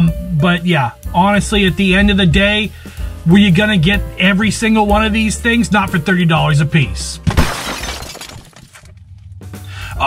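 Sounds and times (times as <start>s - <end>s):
faint background music: 0.0s - 7.6s
glass breaking: 7.3s - 9.0s.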